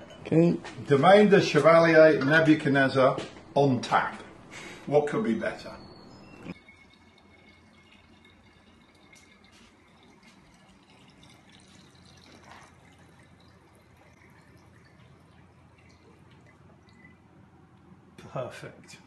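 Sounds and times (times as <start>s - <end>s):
liquid trickling into glass: 5.0s - 17.9s.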